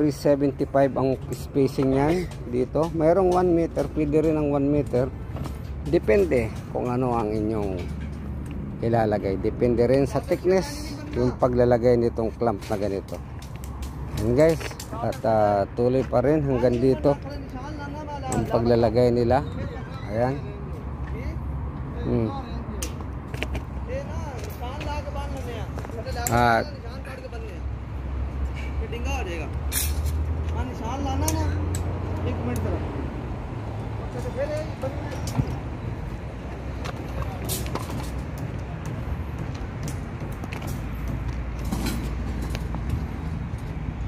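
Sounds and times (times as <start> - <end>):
sharp clicks and knocks: 5.4 - 8.6.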